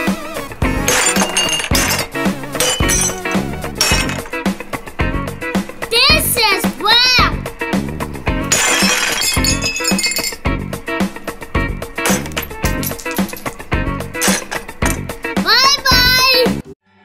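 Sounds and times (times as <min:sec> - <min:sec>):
background music with steady beat: 0:00.0 - 0:08.6, 0:09.4 - 0:16.7
ceramic plate shattering: 0:00.8 - 0:04.5, 0:08.5 - 0:10.5, 0:12.0 - 0:13.6, 0:14.2 - 0:15.1
pieces clinking: 0:00.8 - 0:04.5, 0:08.5 - 0:10.5, 0:12.0 - 0:15.2.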